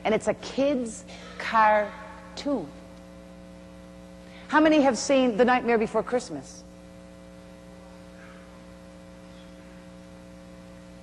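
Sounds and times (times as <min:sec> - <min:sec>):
faint electrical mains hum: 0:00.0 - 0:11.0.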